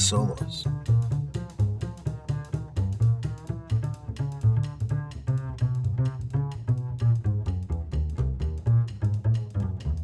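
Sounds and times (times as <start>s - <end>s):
plucked double bass: 0.6s - 10.0s.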